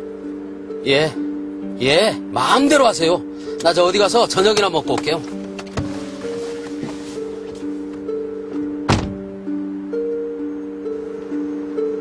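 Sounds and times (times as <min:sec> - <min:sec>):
soft background music: 0:00.0 - 0:12.0
car door shutting: 0:03.6 - 0:08.1, 0:08.8 - 0:09.3.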